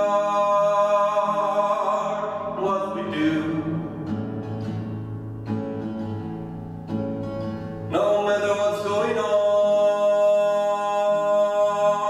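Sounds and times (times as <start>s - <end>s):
person singing long wordless note: 0.0s - 4.2s, 7.9s - 12.0s
acoustic guitar strumming: 0.0s - 12.0s.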